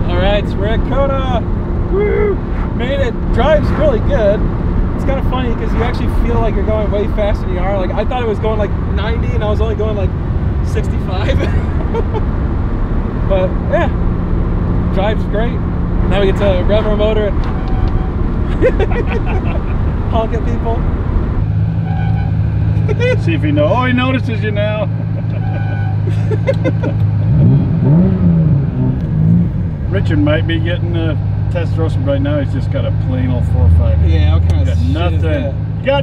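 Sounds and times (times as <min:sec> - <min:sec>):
car engine drone inside cabin: 0:00.0 - 0:35.6
road noise: 0:00.0 - 0:36.0
person laughing: 0:11.1 - 0:12.3, 0:18.4 - 0:19.9, 0:22.8 - 0:23.2, 0:24.8 - 0:27.3.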